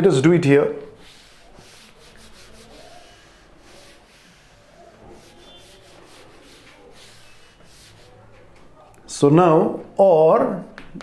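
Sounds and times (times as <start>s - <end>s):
duster rubbing on chalkboard: 0.8s - 8.5s.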